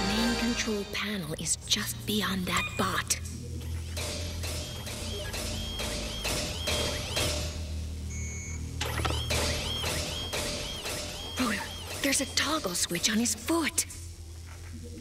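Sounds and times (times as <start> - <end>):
low droning music: 0.0 - 2.4, 3.1 - 15.0
metallic clanking robot steps: 3.8 - 7.7.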